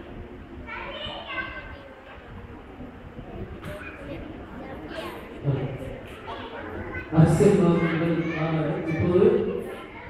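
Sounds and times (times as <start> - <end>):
murmur of voices in hall: 0.0 - 10.0
child's high-pitched voice: 0.6 - 2.4, 3.3 - 5.4, 6.0 - 10.0.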